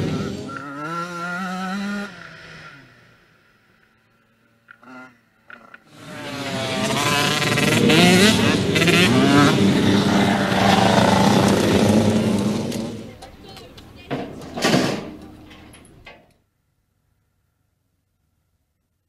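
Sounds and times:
motorbike engine revving past: 0.0 - 13.2.

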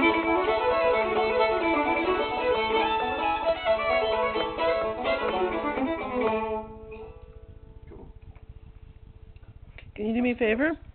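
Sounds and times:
string tone ringing: 0.0 - 9.3.

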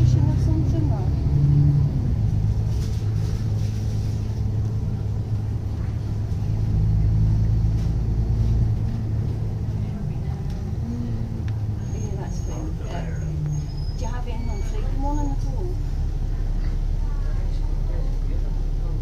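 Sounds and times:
bus diesel engine drone: 0.0 - 19.0
road rumble: 0.0 - 19.0.

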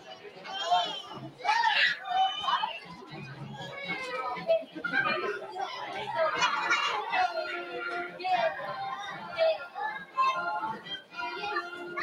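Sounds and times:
children and adults talking: 0.0 - 12.0.

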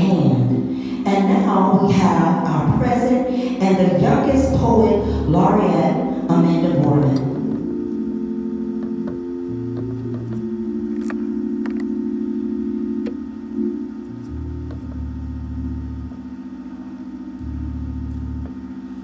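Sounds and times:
low organ pedal bass notes: 0.0 - 19.0
organ playing soft chords: 0.0 - 19.0.

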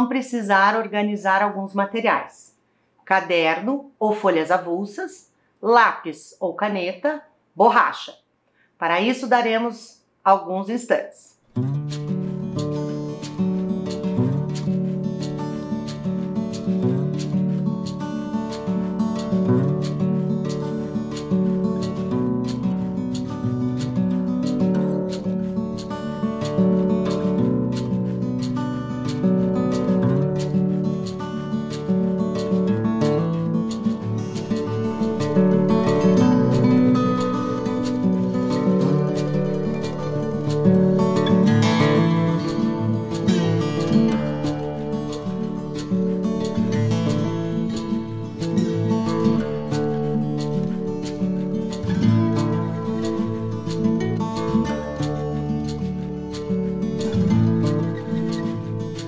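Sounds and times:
strummed acoustic guitar music: 11.5 - 59.0.

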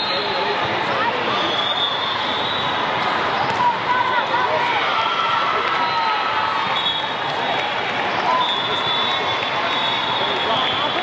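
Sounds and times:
many voices talking and calling: 0.0 - 11.0.

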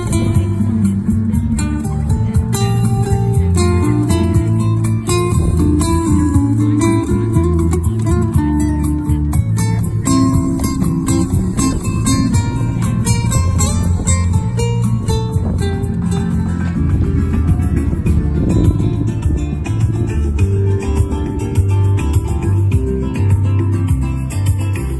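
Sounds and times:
nylon-string guitar playing: 0.0 - 24.9.

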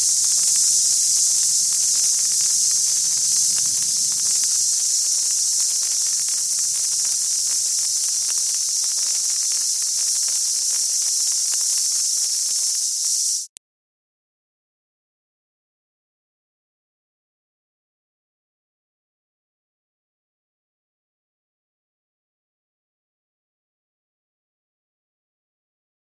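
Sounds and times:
burning fuse hissing and crackling: 0.0 - 13.5.

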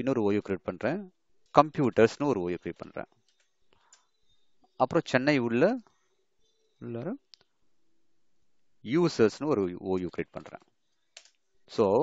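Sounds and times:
computer mouse click: 11.1 - 11.4.

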